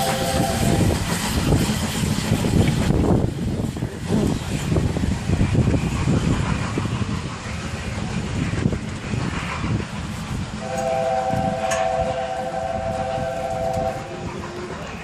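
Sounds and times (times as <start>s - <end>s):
steam locomotive rumbling: 0.0s - 15.0s.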